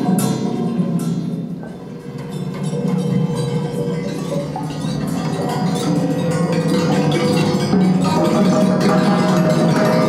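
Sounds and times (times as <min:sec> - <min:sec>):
light clinks and chiming notes: 0:00.0 - 0:10.0.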